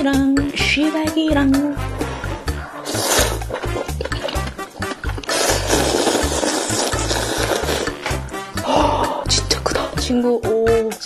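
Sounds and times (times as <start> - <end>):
slurping noodles: 1.9 - 8.4.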